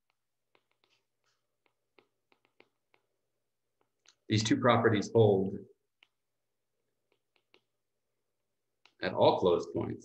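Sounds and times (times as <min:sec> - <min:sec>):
stylus tapping on tablet screen: 0:00.0 - 0:04.3, 0:07.0 - 0:07.8.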